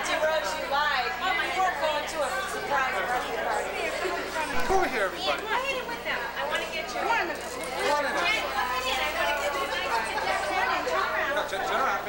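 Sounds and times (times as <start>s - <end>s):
overlapping chatter: 0.0s - 12.0s.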